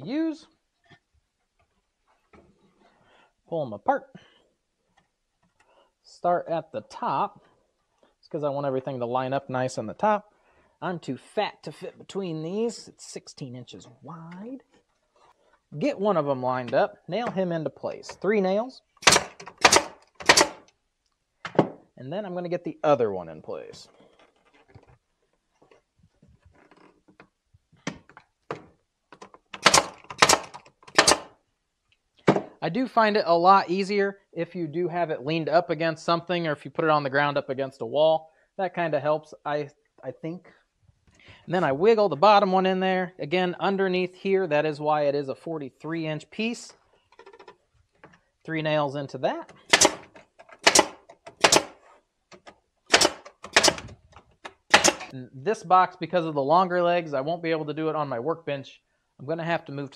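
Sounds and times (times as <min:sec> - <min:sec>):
nail gun firing: 0:19.0 - 0:20.7, 0:29.6 - 0:31.4, 0:49.6 - 0:51.8, 0:52.9 - 0:53.9, 0:54.5 - 0:55.1.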